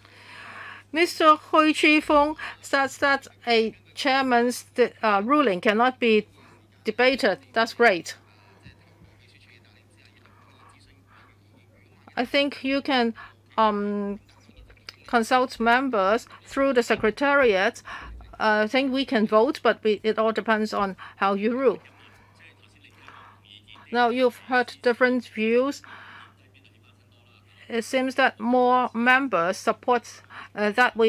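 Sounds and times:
low electrical hum: 0.0s - 31.0s
person speaking: 0.1s - 31.0s
faint indistinct voices: 0.9s - 31.0s
man speaking: 8.1s - 12.2s, 14.2s - 15.0s.

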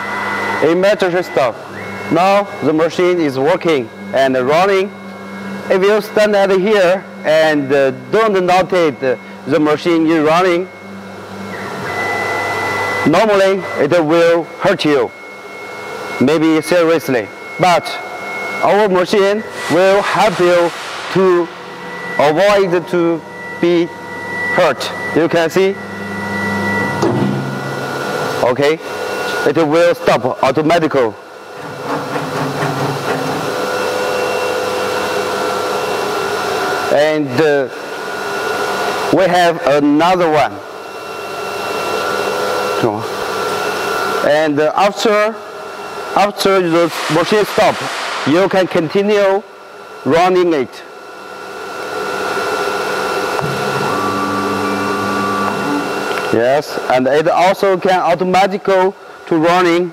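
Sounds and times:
low motor hum: 0.0s - 29.3s, 53.1s - 56.4s
router machine whining: 0.0s - 29.5s, 51.7s - 56.9s.

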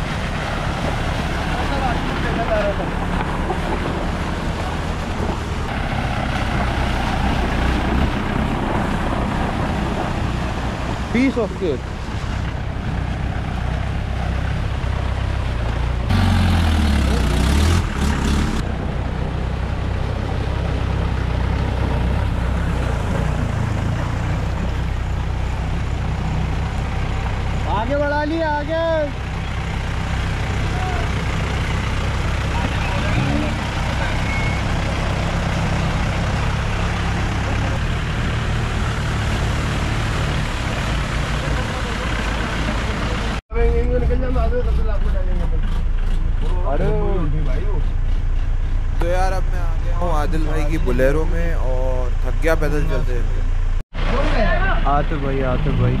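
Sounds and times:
jeep engines driving through water: 0.0s - 56.0s
engine revving: 15.9s - 18.8s, 29.4s - 43.9s, 44.6s - 56.0s.

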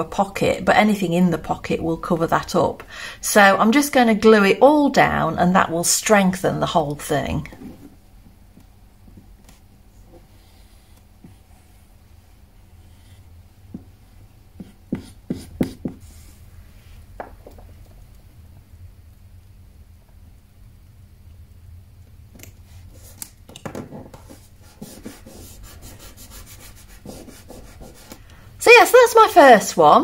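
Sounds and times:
fingers rubbing paper: 24.2s - 28.2s.

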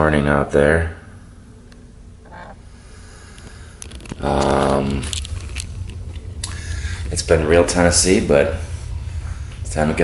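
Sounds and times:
low outdoor hum: 0.0s - 10.0s.

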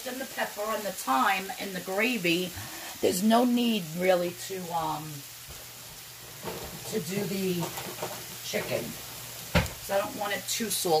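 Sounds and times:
meat sizzling in a skillet: 0.0s - 11.0s.

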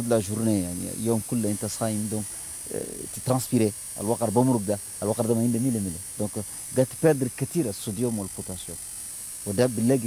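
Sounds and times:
man speaking: 0.0s - 8.8s, 9.5s - 10.0s
high-pitched recording hiss: 0.0s - 10.0s.

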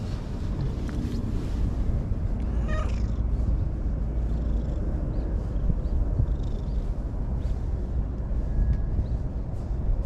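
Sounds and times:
steady low rumble: 0.0s - 10.0s
cat meowing: 2.5s - 3.1s.

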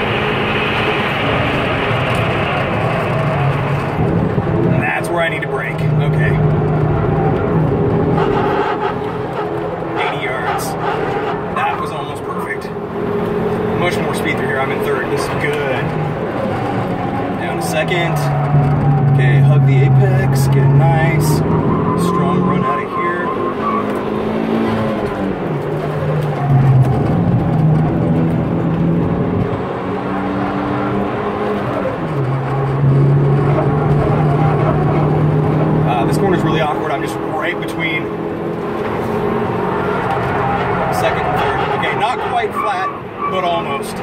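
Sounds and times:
car engine pulling hard: 0.0s - 44.0s.

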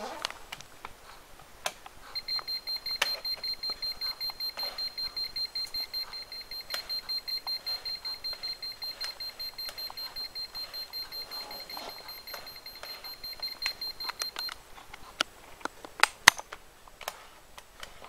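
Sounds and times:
sharp clicks of handling: 1.6s - 18.0s
meter alarm beeping rapidly: 2.2s - 14.6s.

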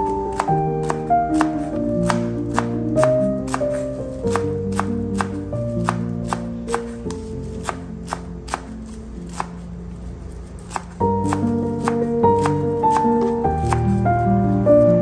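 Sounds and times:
knife chopping herbs on wood: 0.0s - 9.6s, 10.4s - 14.6s
background music: 0.0s - 15.0s.

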